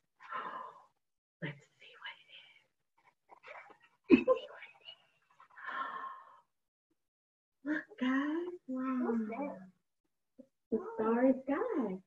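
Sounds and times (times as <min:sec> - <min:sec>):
person whispering: 0:01.4 - 0:02.7, 0:04.4 - 0:05.1.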